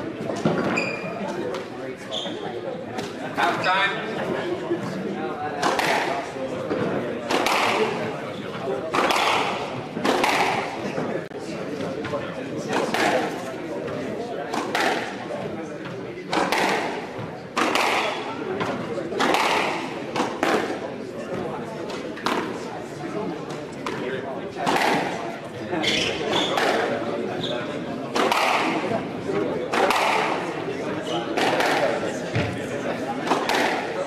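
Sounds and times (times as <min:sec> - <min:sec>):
racket striking squash ball: 0:05.6 - 0:06.2, 0:07.2 - 0:08.0, 0:08.9 - 0:10.8, 0:12.7 - 0:13.4, 0:14.5 - 0:15.2, 0:16.3 - 0:20.8, 0:24.6 - 0:25.2, 0:26.4 - 0:27.0, 0:28.1 - 0:28.9, 0:29.7 - 0:30.5, 0:31.3 - 0:32.5, 0:33.2 - 0:34.0.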